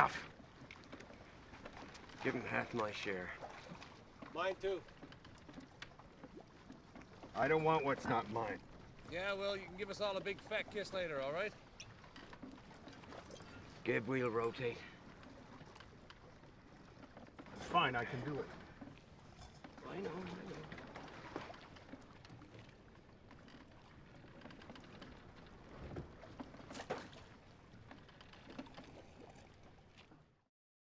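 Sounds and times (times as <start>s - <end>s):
water washing against boat: 0.0s - 30.2s.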